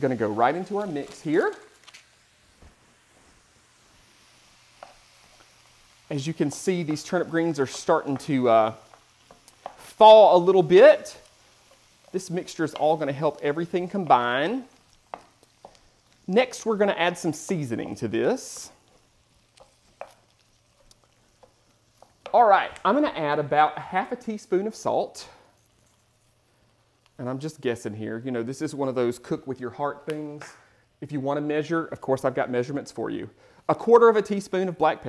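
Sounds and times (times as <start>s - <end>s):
stirring thick mixture in skillet: 0.0s - 29.3s
spatula tapping pan: 4.8s - 5.5s, 6.5s - 10.7s, 11.3s - 16.1s, 18.5s - 22.9s.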